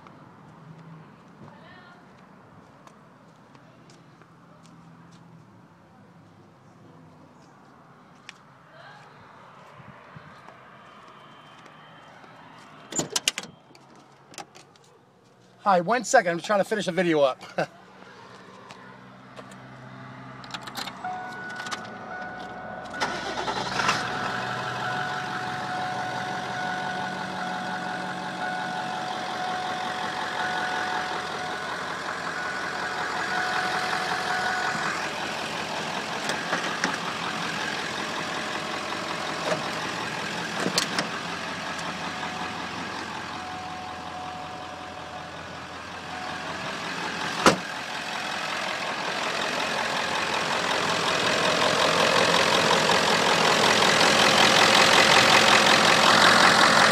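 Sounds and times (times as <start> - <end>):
diesel engine idling: 17.6 - 56.9.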